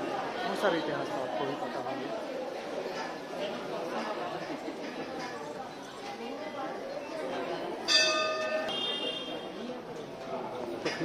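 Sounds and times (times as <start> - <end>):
temple bell ringing: 7.8 - 9.1.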